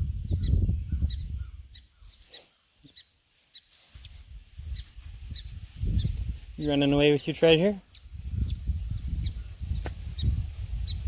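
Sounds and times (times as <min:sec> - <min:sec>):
small birds chirping: 0:00.1 - 0:11.0.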